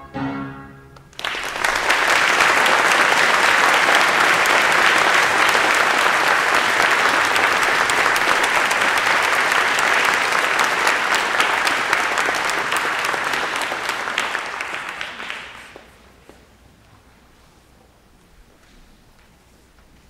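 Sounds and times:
audience applauding: 0:01.1 - 0:16.0.

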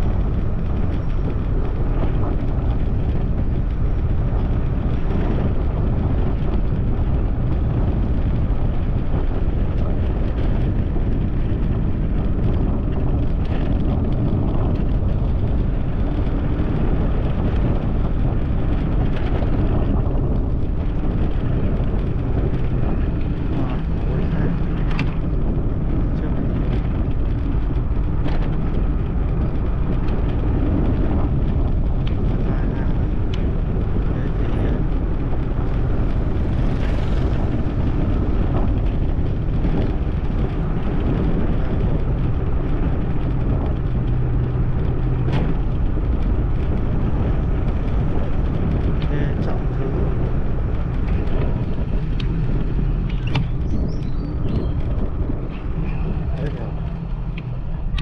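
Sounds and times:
road ride rumble: 0:00.0 - 0:58.0
wind on microphone: 0:00.0 - 0:58.0.

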